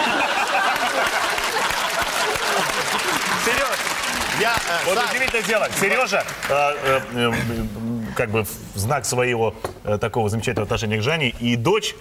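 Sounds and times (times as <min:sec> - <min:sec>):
people laughing: 0:00.0 - 0:04.4
audience applauding: 0:00.0 - 0:07.0.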